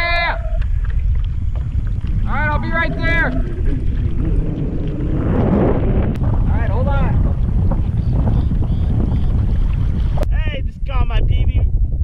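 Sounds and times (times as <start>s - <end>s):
water swishing: 0.0s - 10.3s
wind buffeting microphone: 0.0s - 12.0s.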